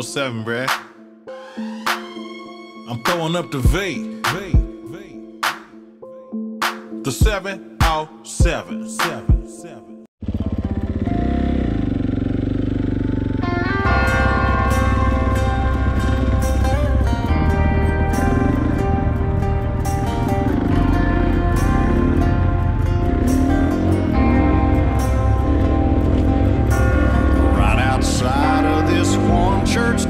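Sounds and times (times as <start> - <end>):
instrumental song intro: 0.0 - 10.0, 13.4 - 30.0
dirt bike engine revving: 10.2 - 30.0.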